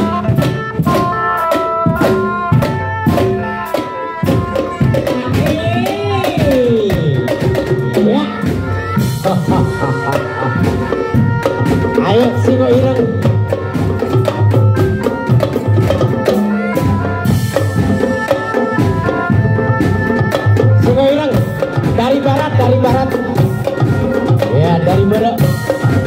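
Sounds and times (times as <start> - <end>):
folk music with drums: 0.0 - 26.0.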